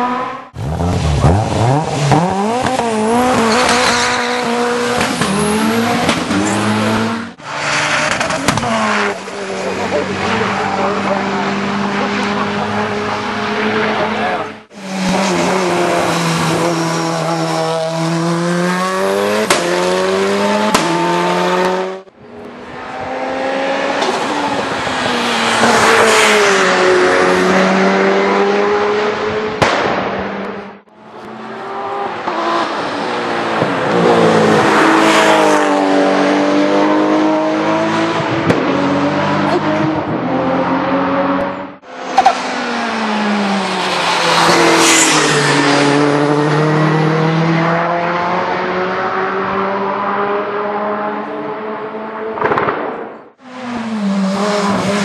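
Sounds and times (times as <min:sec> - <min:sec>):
race car engines revving: 0:00.0 - 0:55.0
exhaust backfire bangs: 0:52.4 - 0:53.3.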